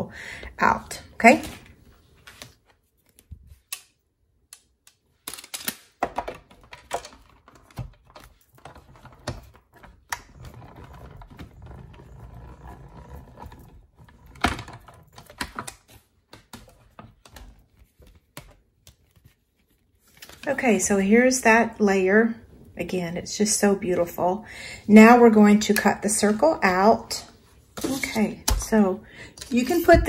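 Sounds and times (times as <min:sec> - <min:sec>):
plastic plates clicking and knocking: 0:06.0 - 0:10.3
low rumble of rollers: 0:10.3 - 0:14.9.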